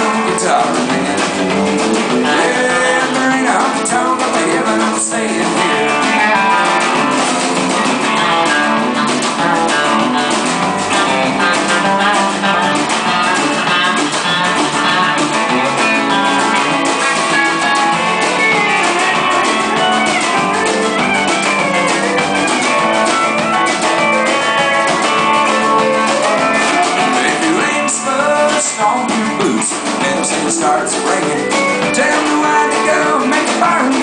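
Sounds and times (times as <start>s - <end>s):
drum kit: 0.0s - 34.0s
electric guitars: 0.0s - 34.0s
steel guitar: 0.0s - 34.0s.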